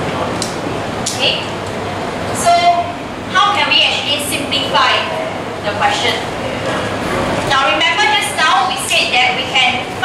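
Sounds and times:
steady background rumble: 0.0 - 10.0.

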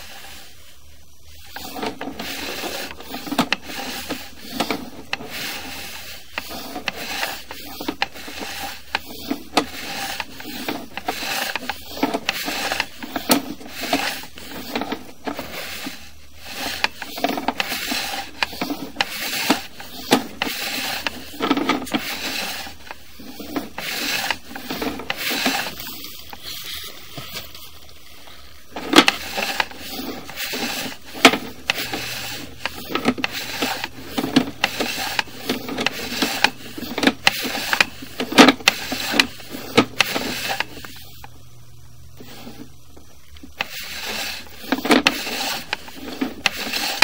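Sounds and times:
cable scraping inside pipe: 0.0 - 47.0.

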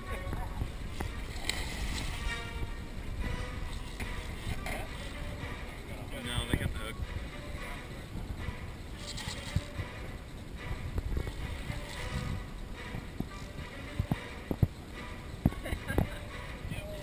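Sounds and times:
background music: 0.0 - 17.0
low rumble: 0.0 - 17.0.

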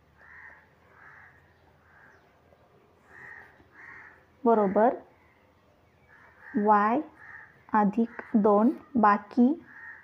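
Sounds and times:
short harsh bird calls: 3.0 - 4.3.

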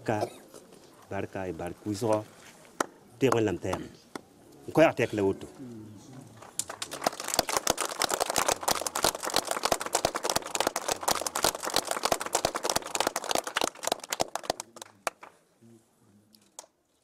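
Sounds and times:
small group clapping: 6.4 - 15.4, 16.4 - 16.8.

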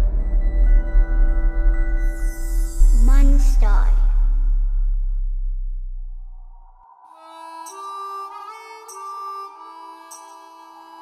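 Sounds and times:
deep bass rumble: 0.0 - 6.9.

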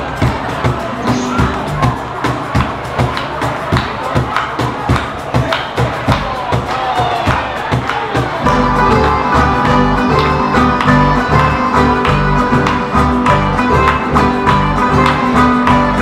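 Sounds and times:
crowd noise: 0.0 - 16.0
drums keeping a steady beat: 0.0 - 16.0.

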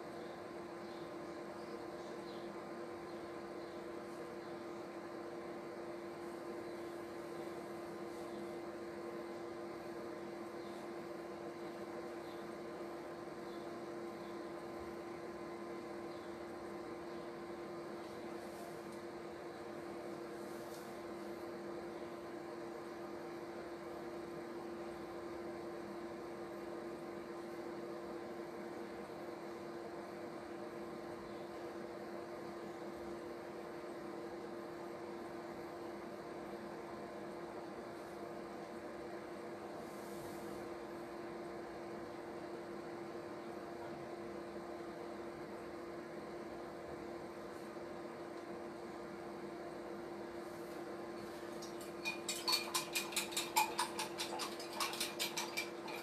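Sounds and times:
electrical appliance hum: 0.0 - 56.0.

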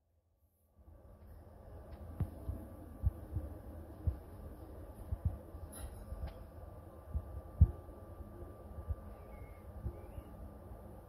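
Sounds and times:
faint steady hum: 0.0 - 11.0
low dull thumps: 7.1 - 7.9.

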